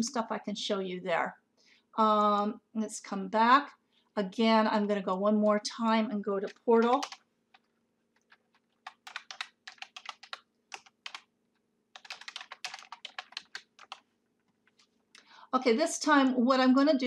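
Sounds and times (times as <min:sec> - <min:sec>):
computer keyboard typing: 0:06.4 - 0:11.3, 0:11.9 - 0:14.9.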